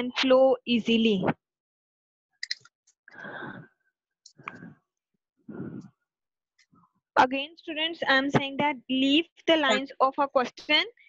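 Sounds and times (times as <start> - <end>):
short breathy bursts of noise: 5.5 - 5.9.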